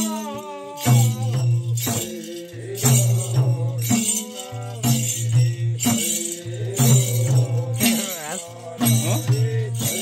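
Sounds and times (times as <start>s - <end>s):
jingling percussion: 0.0s - 10.0s
voices singing: 0.0s - 10.0s.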